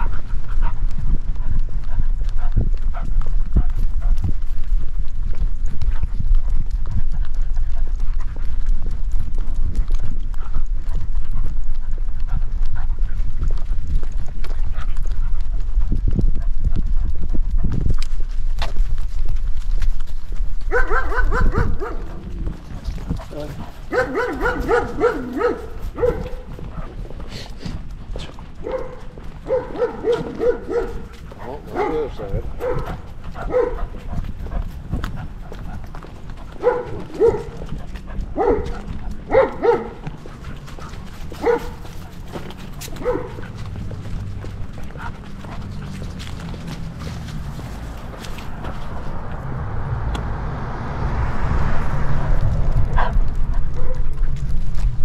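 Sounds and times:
low rumble on microphone: 0.0s - 55.0s.

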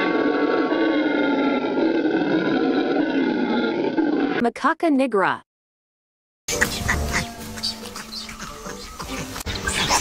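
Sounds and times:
background music: 6.5s - 10.0s
macaques calling: 6.5s - 10.0s.

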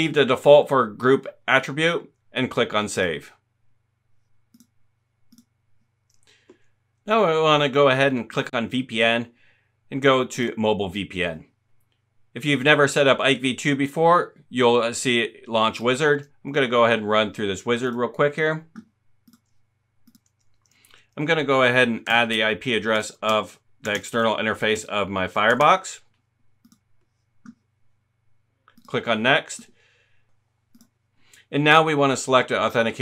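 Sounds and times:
computer mouse clicks: 4.5s - 6.6s, 18.7s - 20.9s, 23.2s - 24.1s, 25.5s - 27.7s, 28.7s - 29.0s, 30.7s - 31.0s.

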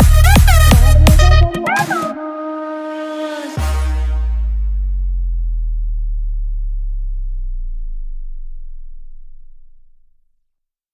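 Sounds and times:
deep electronic bass note: 0.0s - 1.5s, 3.6s - 10.4s.

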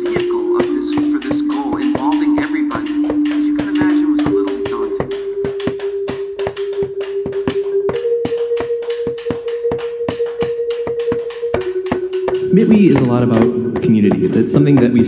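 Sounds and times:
hand taps on tabletop: 0.0s - 15.0s
held musical note: 0.0s - 15.0s
stick tapping on floor: 0.0s - 15.0s.

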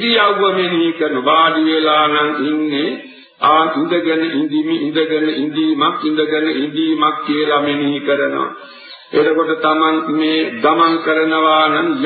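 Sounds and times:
monk chanting: 0.0s - 12.0s.

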